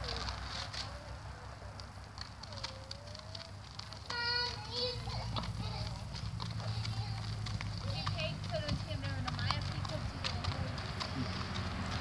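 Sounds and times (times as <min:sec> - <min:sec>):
horse hoofbeats on gravel: 0:00.0 - 0:12.0.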